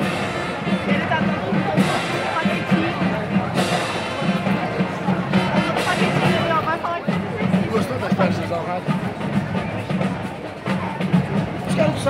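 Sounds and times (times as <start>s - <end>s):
crowd voices: 0.0s - 12.0s
marching band music: 0.0s - 12.0s
repeating drum beat: 0.0s - 12.0s.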